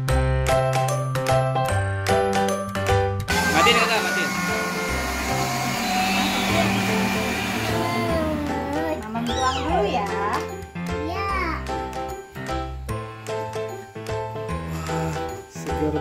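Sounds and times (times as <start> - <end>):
blender whirring: 3.3 - 9.2
children's music with chiming notes: 8.1 - 16.0.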